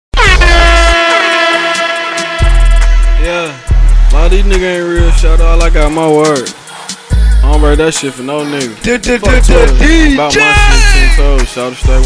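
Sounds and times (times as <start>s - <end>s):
air horn blast sliding down: 0.2s - 4.5s
deep bass note: 0.2s - 5.9s
trap beat: 0.2s - 12.0s.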